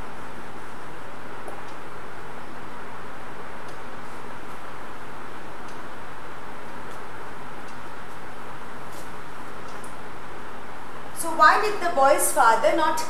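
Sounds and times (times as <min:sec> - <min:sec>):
background hiss: 0:00.0 - 0:13.0.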